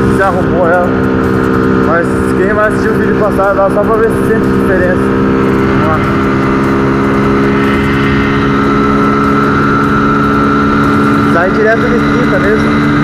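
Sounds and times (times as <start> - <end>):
motorcycle engine at high revs: 0.0 - 13.0.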